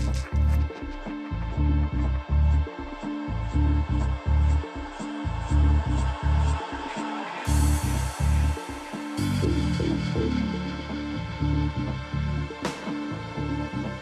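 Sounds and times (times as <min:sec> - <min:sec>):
electronic dance music: 0:04.6 - 0:14.0.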